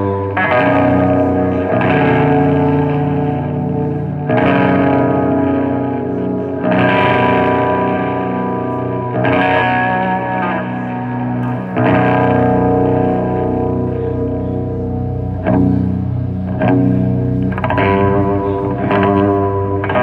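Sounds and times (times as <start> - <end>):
metal band playing live: 0.0 - 20.0.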